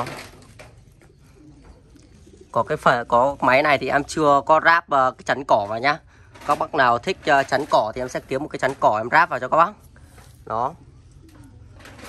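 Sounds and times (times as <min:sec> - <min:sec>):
faint low bird calls: 0:00.0 - 0:05.4.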